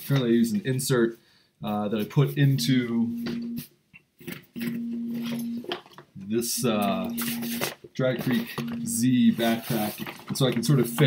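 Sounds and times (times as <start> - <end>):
soft handling noises: 2.0 - 11.0.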